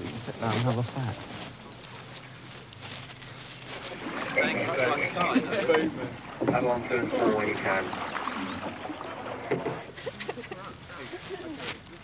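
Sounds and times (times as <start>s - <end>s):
voices calling: 0.2s - 12.0s.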